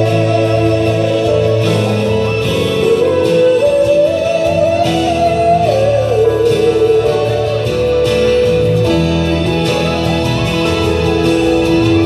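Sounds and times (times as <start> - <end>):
person singing long held notes: 0.0 - 8.0
acoustic guitar: 0.0 - 12.0
keyboard accompaniment: 0.0 - 12.0.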